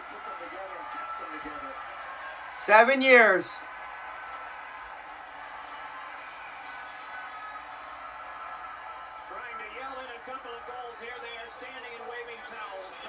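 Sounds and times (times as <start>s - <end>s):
commentator talking: 2.5s - 3.6s.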